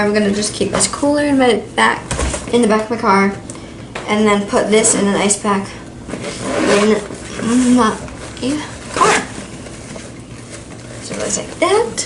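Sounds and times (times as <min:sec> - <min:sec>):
fabric cooler bag rustling: 0:06.0 - 0:12.0.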